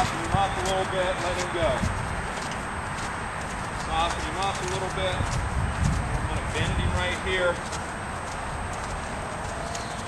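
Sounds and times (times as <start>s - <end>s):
horse hoofbeats on soft dirt: 0.0s - 10.0s.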